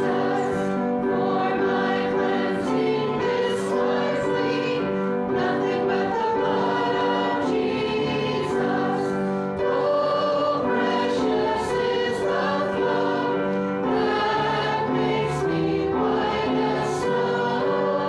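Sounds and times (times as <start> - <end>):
congregation singing a hymn: 0.0 - 18.0.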